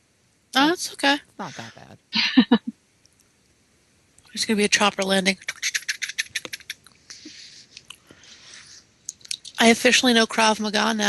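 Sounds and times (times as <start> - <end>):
soft hisses: 3.3 - 10.0.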